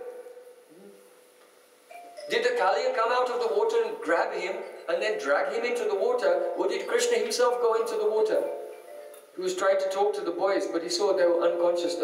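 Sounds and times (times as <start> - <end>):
man speaking: 2.3 - 8.6, 9.4 - 12.0.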